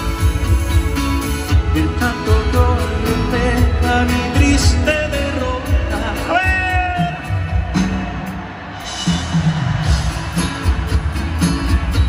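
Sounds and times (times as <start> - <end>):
live band music: 0.0 - 12.0.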